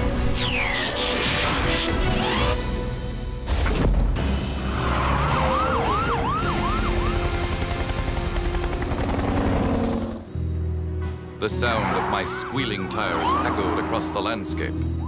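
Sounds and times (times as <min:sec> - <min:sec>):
cartoon soundtrack music: 0:00.0 - 0:08.3, 0:10.1 - 0:15.0
siren wailing: 0:04.8 - 0:07.5, 0:11.8 - 0:14.2.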